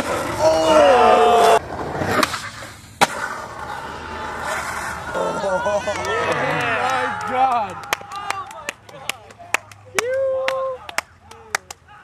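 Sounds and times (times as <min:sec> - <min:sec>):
skateboard wheels rolling on pavement: 0:00.0 - 0:11.1
skateboard popping: 0:01.6 - 0:03.8
people's voices: 0:03.7 - 0:12.0.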